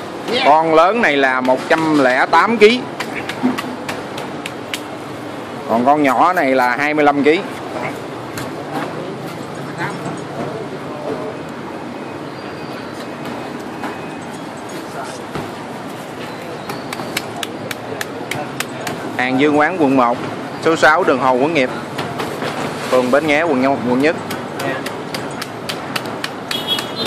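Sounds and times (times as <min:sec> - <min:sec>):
busy room noise: 0:00.0 - 0:27.0
steady background din: 0:00.1 - 0:27.0
sharp taps: 0:03.0 - 0:04.9, 0:16.7 - 0:19.1, 0:24.3 - 0:27.0.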